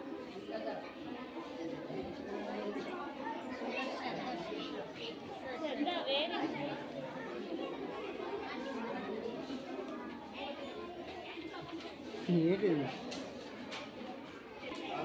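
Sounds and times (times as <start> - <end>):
children chattering in a hall: 0.0 - 15.0.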